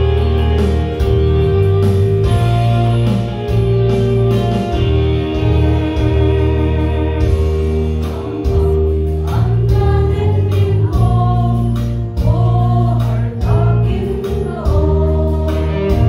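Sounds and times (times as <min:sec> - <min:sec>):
instrumental accompaniment with bass: 0:00.0 - 0:16.0
women's group singing a hymn: 0:07.6 - 0:16.0.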